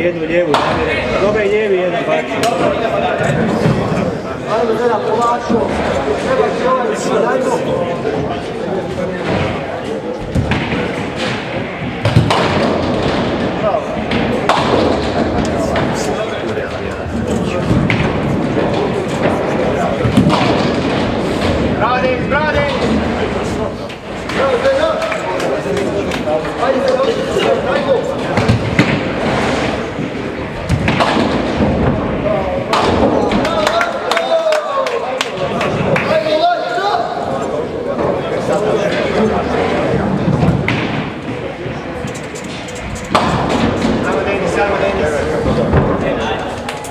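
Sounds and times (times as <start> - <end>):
continuous talk: 0.0 - 46.9
bowling balls knocking pins: 9.2 - 26.9.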